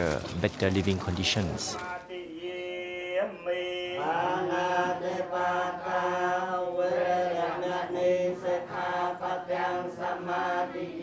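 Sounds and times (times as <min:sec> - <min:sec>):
voices chanting: 0:01.4 - 0:11.0.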